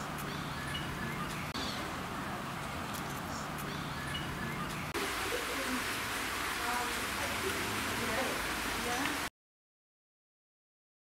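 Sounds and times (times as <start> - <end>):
faint voices: 4.4 - 6.0
water rushing over weir: 4.6 - 9.3.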